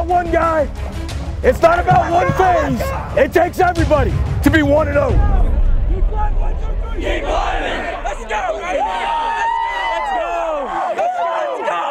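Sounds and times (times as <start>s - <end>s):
group of people shouting and cheering: 1.6s - 3.3s, 5.1s - 11.9s.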